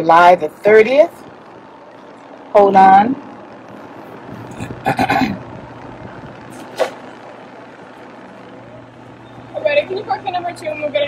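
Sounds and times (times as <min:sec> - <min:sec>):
engine and road hum: 0:00.0 - 0:11.0
brief sharp sound: 0:06.5 - 0:07.1.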